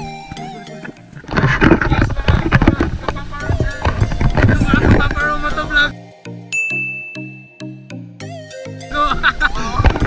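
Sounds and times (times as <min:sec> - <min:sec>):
background music with pulsing beat: 0:00.0 - 0:01.4, 0:02.8 - 0:10.0
bright bell-like ding: 0:06.5 - 0:07.8.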